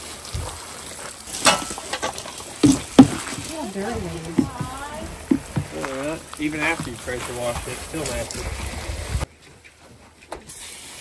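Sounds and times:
cleaning sprayer hissing: 2.7 - 8.3.

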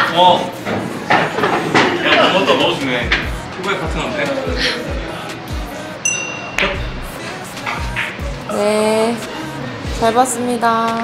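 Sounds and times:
background music with beat: 0.7 - 11.0
bright ringing chime: 6.0 - 7.0
pool cue striking ball: 6.1 - 8.2.

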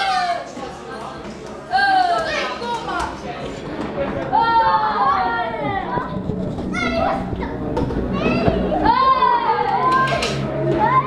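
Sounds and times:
children shouting excitedly: 0.0 - 0.5, 1.7 - 3.1, 8.2 - 11.0.

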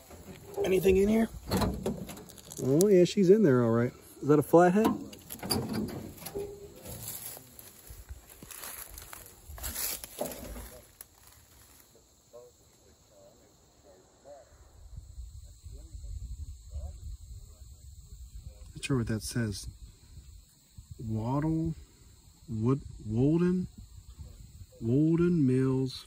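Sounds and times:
faint voices: 2.6 - 14.8
rustling and knocking: 4.8 - 7.4.

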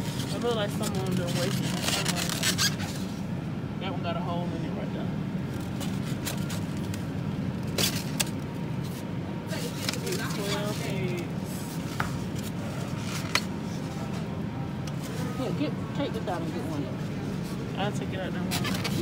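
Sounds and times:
refrigerated display case humming: 0.0 - 19.0
faint voices: 9.0 - 19.0.

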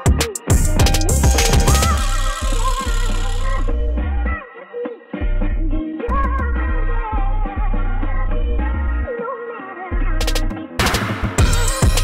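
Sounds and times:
heavy bass: 0.0 - 4.4, 5.2 - 9.1, 10.0 - 12.0.

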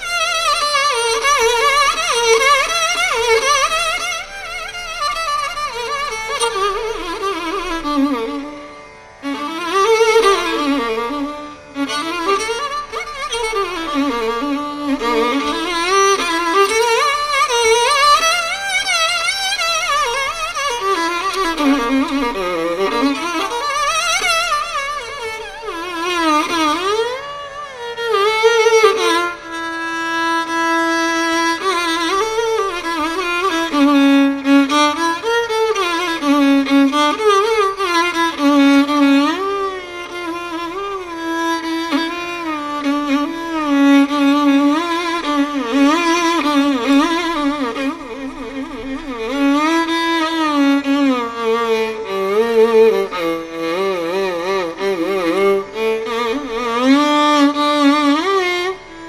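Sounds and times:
violin playing ornamented melody: 0.0 - 59.0.

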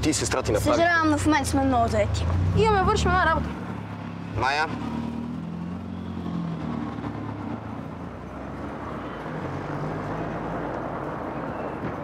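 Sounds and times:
street traffic noise: 0.0 - 12.0
vehicle engine humming: 0.0 - 12.0.

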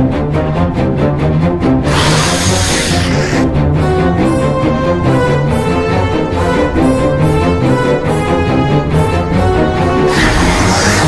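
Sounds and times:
loud hissing rush of noise: 1.9 - 3.4.

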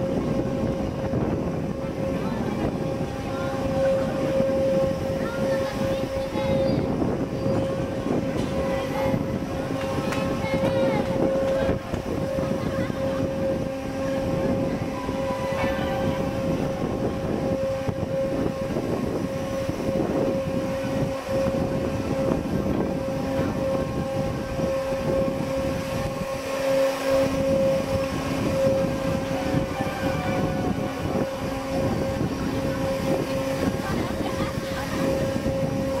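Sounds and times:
faint voices: 0.0 - 36.0
ride machinery humming: 0.0 - 36.0
rough rushing rumble: 0.0 - 36.0.

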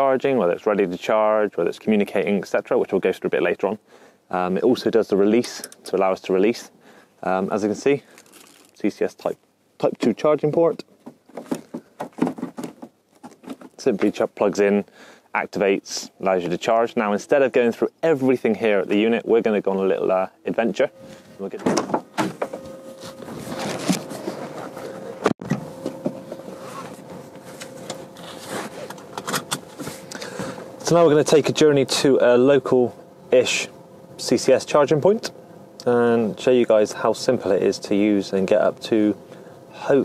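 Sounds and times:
faint steady hum: 0.0 - 40.0
clothing rustling: 8.1 - 8.8, 22.4 - 25.3.

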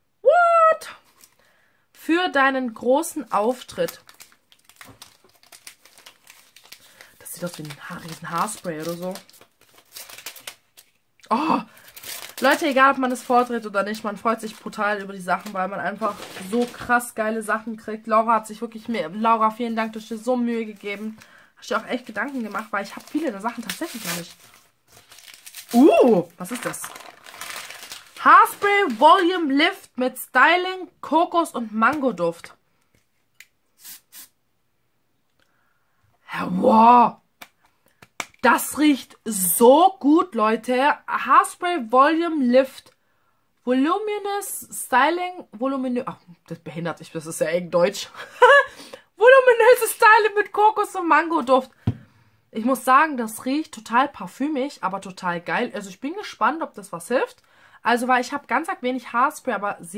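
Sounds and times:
paper wrapping crinkling: 3.2 - 17.0, 19.8 - 29.6
hairspray hissing: 33.8 - 34.3.

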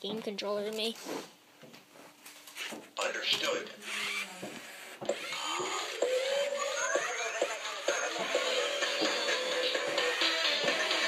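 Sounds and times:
toy robot dance music: 5.1 - 11.0.

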